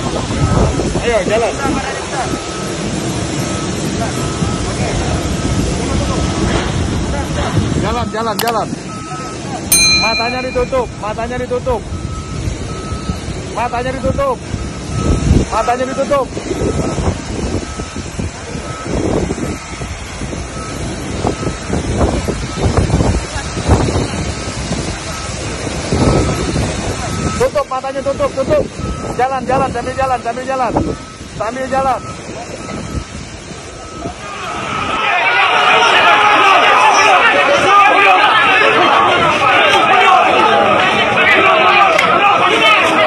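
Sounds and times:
wind buffeting microphone: 0.0s - 35.2s
airport apron rumble and hiss: 0.0s - 43.0s
faint high beep: 8.0s - 11.1s.

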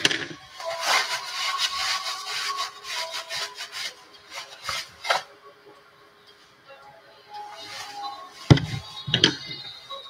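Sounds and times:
rasping scraping strokes: 0.0s - 5.3s.

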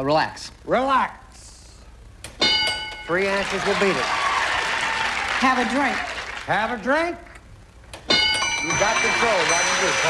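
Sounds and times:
bell ding: 2.4s - 3.2s, 8.1s - 10.0s.

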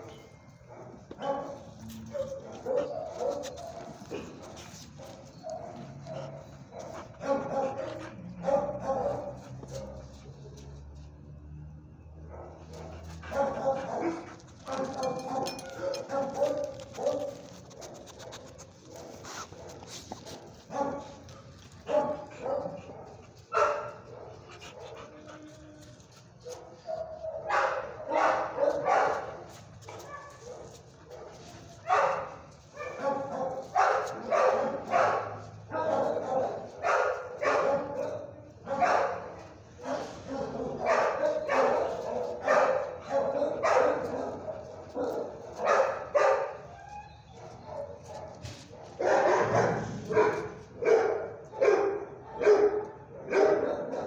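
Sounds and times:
dogs barking: 0.0s - 10.2s, 12.2s - 25.4s, 26.4s - 54.0s.

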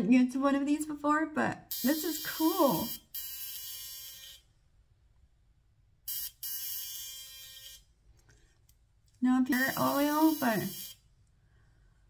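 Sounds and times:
high electrical buzz: 1.7s - 4.4s, 6.1s - 7.8s, 9.5s - 11.0s.

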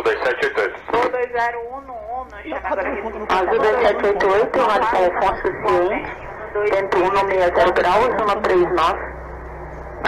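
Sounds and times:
air traffic radio call: 0.0s - 9.2s
steady low hum: 0.0s - 10.0s.

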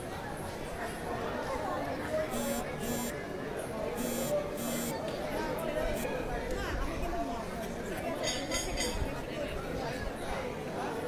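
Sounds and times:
crowd chatter: 0.0s - 11.0s
buzzer short buzzes: 2.3s - 3.2s, 4.0s - 5.0s.

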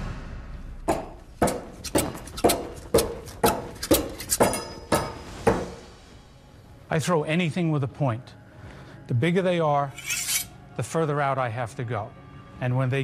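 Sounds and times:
knives striking a board: 0.9s - 5.8s.

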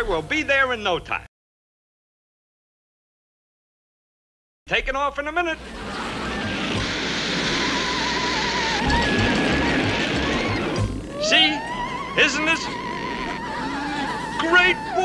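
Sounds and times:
rising whine: 5.6s - 15.0s
rushing roar: 5.6s - 15.0s
wavering electronic tone: 5.7s - 15.0s.

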